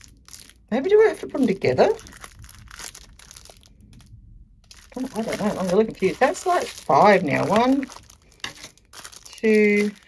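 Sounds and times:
plastic film crinkling: 0.0s - 10.0s.

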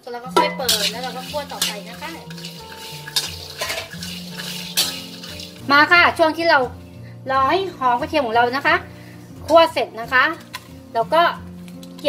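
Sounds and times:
metal spatula scraping a wok: 0.3s - 6.2s.

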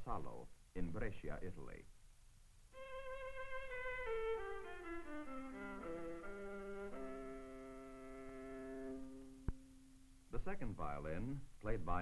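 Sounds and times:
solo bowed viola: 2.8s - 9.6s.

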